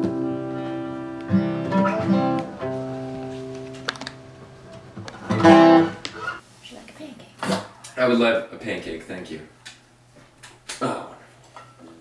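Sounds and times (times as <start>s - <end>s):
acoustic guitars playing: 0.0s - 6.4s.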